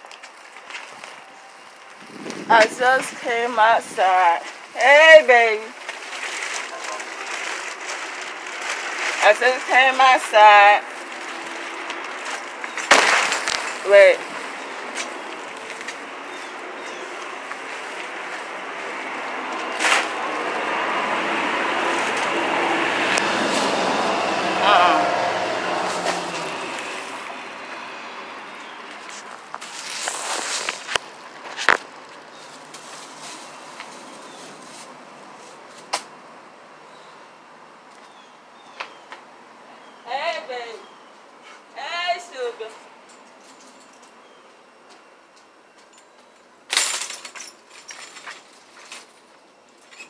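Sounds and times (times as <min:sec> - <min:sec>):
passing vehicle rumble: 0:02.0 - 0:37.7.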